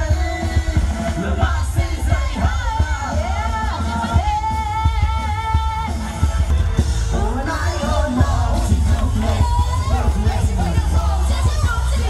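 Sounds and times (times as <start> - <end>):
drums keeping a beat: 0.0 - 12.0.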